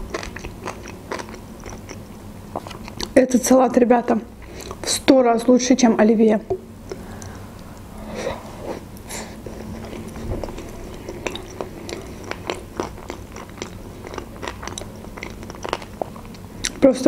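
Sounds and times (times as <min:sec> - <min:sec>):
person chewing with wet mouth clicks: 0:00.0 - 0:03.2, 0:04.6 - 0:04.9, 0:09.5 - 0:16.8.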